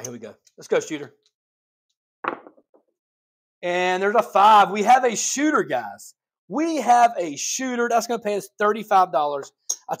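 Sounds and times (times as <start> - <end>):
dice knocking on table: 2.2 - 2.8.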